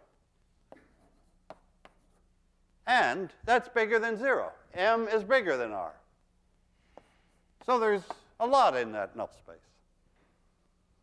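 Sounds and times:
chalk tapping on blackboard: 0:00.6 - 0:02.4, 0:06.8 - 0:08.4
chalk scratching on blackboard: 0:00.7 - 0:02.5, 0:06.8 - 0:07.7.

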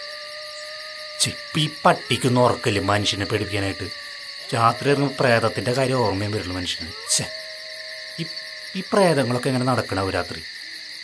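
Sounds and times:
owl hooting: 0:00.0 - 0:10.8
insects chirping: 0:00.0 - 0:11.0.

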